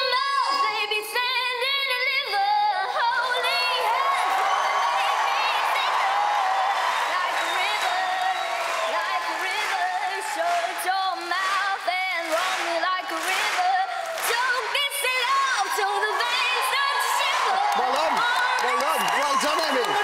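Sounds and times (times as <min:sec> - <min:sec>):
girl singing unaccompanied: 0:00.0 - 0:04.4, 0:05.0 - 0:18.6
audience cheering and applauding: 0:03.0 - 0:20.0.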